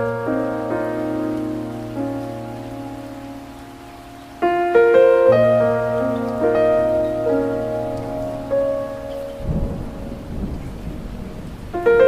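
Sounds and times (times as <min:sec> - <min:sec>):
floodwater rushing: 0:00.0 - 0:12.0
heavy rain: 0:00.0 - 0:12.0
piano music: 0:00.0 - 0:12.0.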